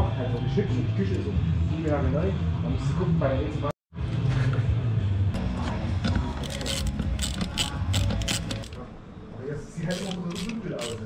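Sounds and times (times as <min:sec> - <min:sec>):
ratcheting screwdriver clicking: 0:06.4 - 0:08.8, 0:09.9 - 0:11.0.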